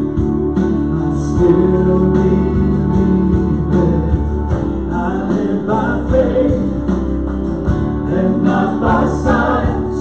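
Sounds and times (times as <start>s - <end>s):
acoustic guitar: 0.0s - 10.0s
stage piano: 0.0s - 10.0s
voices singing together: 0.0s - 10.0s.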